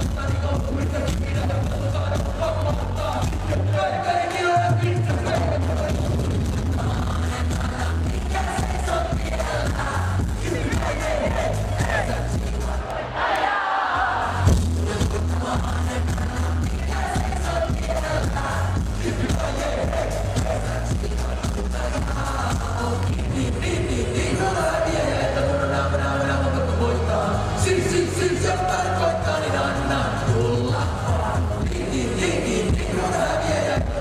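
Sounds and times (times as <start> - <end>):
person rapping: 0.0 - 12.8, 14.7 - 34.0
heavy bass beat: 0.0 - 12.9, 14.2 - 34.0.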